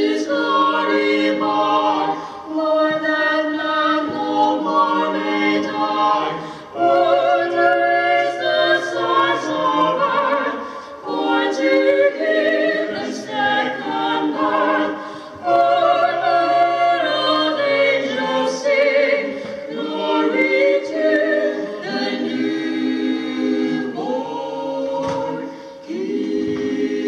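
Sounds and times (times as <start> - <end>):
vocal quartet singing in harmony: 0.0 - 27.0.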